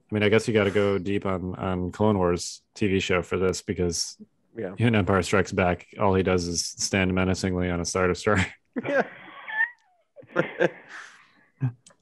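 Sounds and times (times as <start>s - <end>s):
men laughing: 8.4s - 11.1s.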